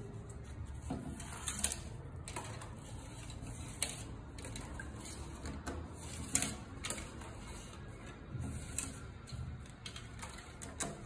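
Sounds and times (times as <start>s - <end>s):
cane strand scraping and rustling: 0.0s - 10.6s.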